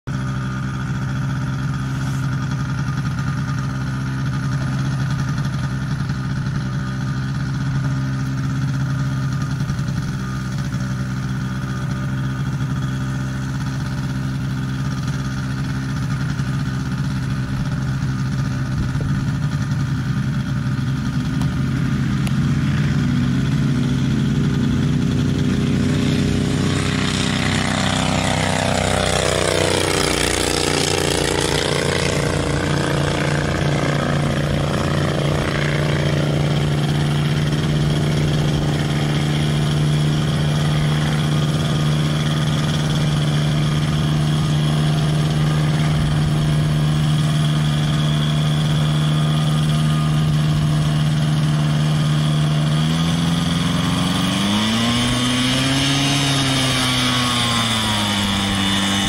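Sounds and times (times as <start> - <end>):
ultralight plane engine running: 0.1 - 59.0.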